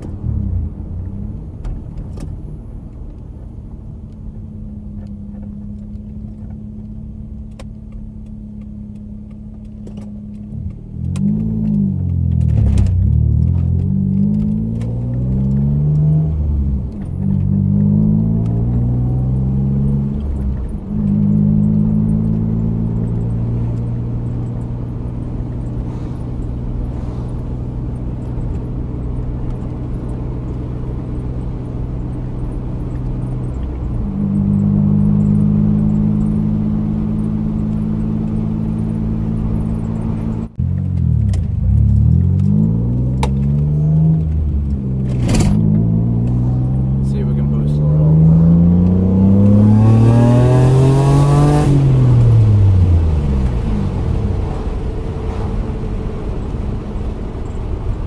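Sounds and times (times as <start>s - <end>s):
car engine accelerating: 0.0s - 58.0s.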